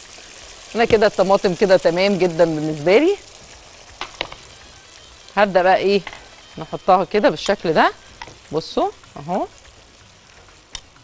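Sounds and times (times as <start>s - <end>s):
tomatoes sizzling in a pan: 0.0s - 11.0s.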